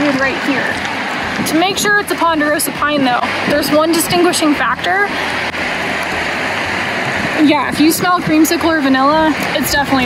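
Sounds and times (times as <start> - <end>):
river rushing over rocks: 0.0 - 10.0.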